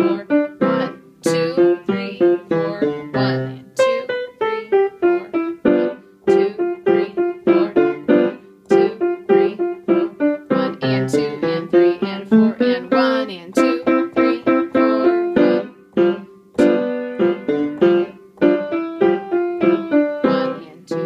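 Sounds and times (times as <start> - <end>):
staccato tango piano: 0.0 - 21.0.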